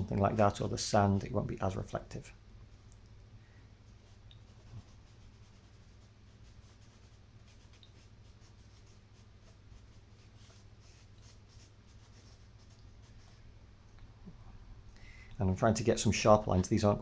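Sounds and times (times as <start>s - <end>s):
chalk scratching on paper: 3.9s - 13.4s.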